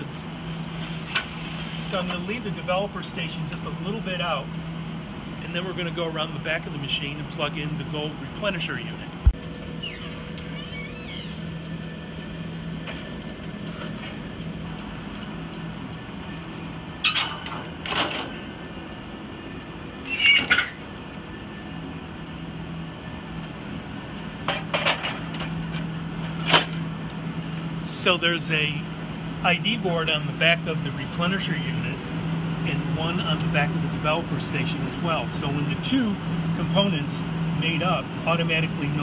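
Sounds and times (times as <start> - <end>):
low machine hum: 0.0 - 39.0.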